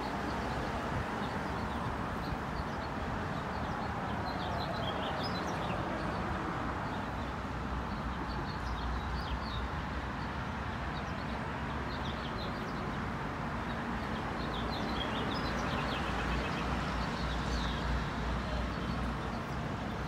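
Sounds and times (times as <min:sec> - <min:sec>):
distant traffic hum: 0:00.0 - 0:20.0.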